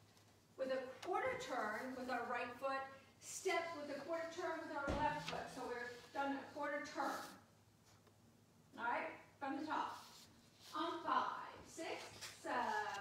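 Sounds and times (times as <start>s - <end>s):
woman speaking: 0.6s - 7.4s, 8.7s - 13.0s.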